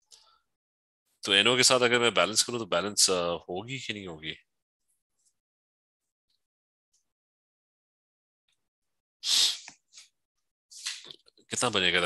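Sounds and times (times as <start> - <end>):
person sneezing: 9.3 - 9.7.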